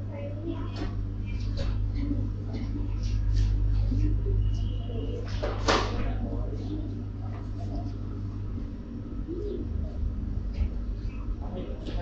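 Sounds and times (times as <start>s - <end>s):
shop background noise: 0.0s - 12.0s.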